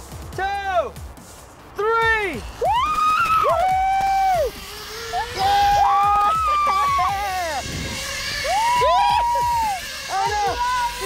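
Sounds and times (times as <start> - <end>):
people whooping and yelling: 2.6 - 11.0.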